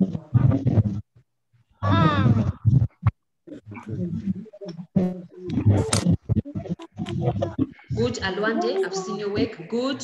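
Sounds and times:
indistinct vocal sounds: 1.8s - 10.0s.

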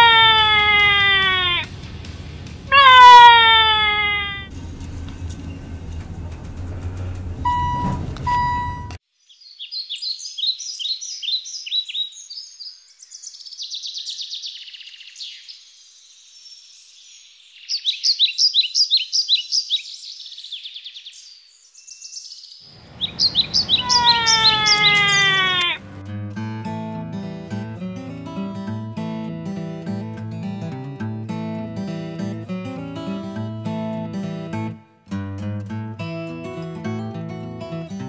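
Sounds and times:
birdsong chirps and trills: 9.2s - 25.8s
acoustic guitar music: 22.8s - 38.0s.

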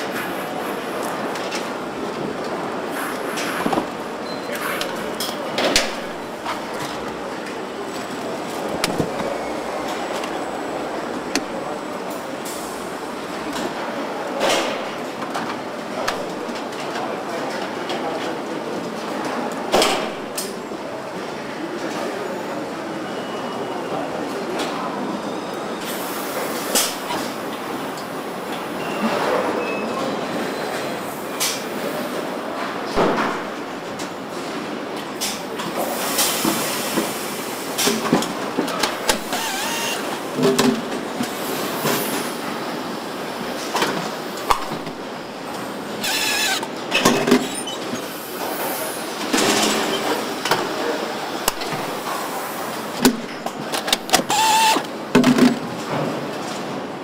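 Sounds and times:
steady mechanical hum: 0.0s - 57.0s
short hissing bursts from tools: 39.2s - 40.1s, 46.0s - 46.7s, 54.3s - 54.8s.

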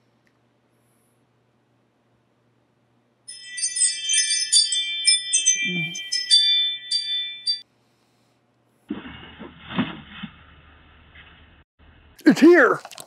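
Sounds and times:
doorbell chime melody: 3.3s - 7.6s
tinny doorbell camera recording: 3.3s - 7.6s.

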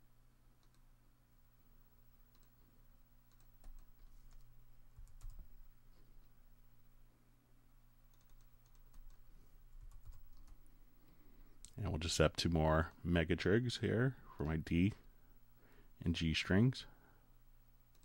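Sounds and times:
low steady hum: 0.0s - 18.0s
mouse clicks: 0.6s - 0.9s, 2.3s - 2.6s
keyboard typing: 2.3s - 2.6s, 3.3s - 5.5s, 8.1s - 10.6s.

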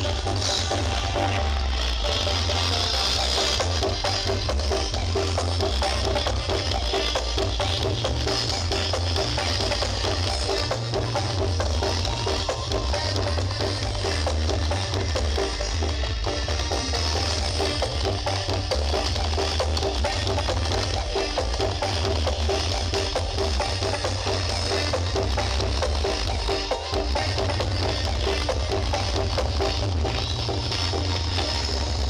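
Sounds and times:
loud music with heavy bass: 0.0s - 32.0s.

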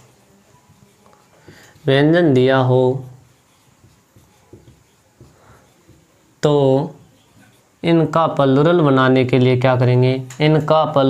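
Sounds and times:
marker pen writing on whiteboard: 0.0s - 9.0s.

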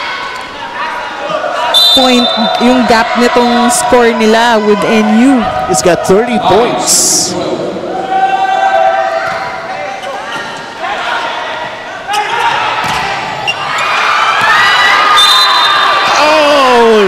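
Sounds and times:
volleyball hits: 12.7s - 13.4s
crowd cheering and screaming: 13.5s - 17.0s.

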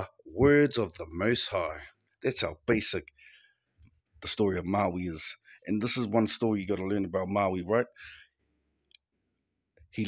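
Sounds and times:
man talking: 0.0s - 3.2s, 4.2s - 8.0s, 9.8s - 10.0s
man breathing: 3.1s - 4.0s, 8.0s - 8.8s.

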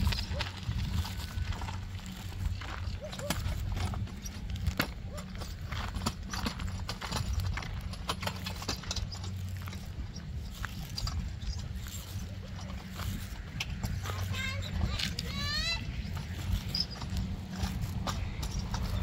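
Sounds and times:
hand truck rattling and knocking: 0.0s - 19.0s.

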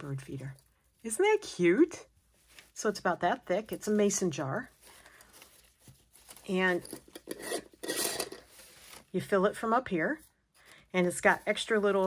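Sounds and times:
metal lid scraping on glass: 6.9s - 8.4s.

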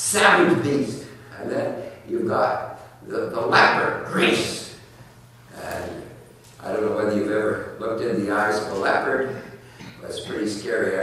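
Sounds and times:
man lecturing: 0.0s - 11.0s.

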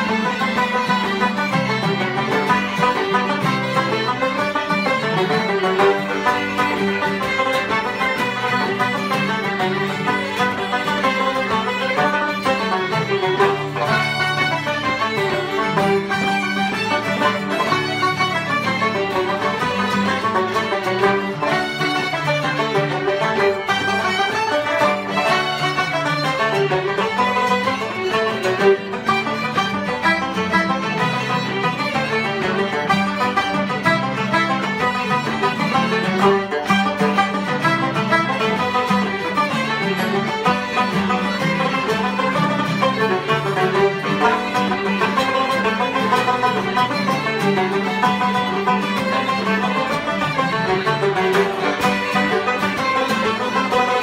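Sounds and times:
fiddles playing dance tune: 0.0s - 54.0s
strummed acoustic guitar: 0.0s - 54.0s.

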